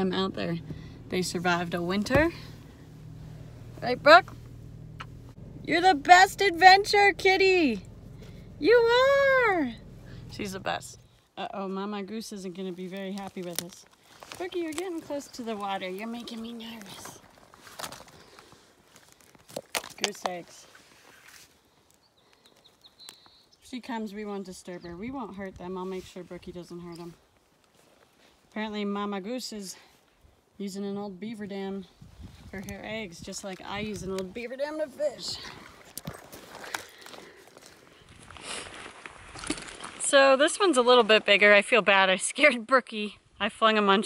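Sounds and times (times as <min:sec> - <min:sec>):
dry sticks crunching underfoot: 0:12.4 - 0:23.6, 0:25.3 - 0:28.6, 0:35.2 - 0:40.2.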